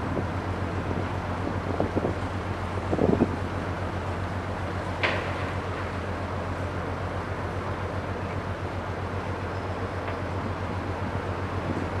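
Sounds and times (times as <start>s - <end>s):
ship machinery drone: 0.0s - 12.0s.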